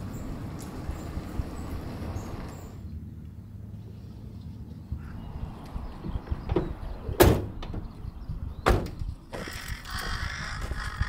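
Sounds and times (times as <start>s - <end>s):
van doors slamming shut: 6.4s - 7.9s, 8.6s - 9.0s.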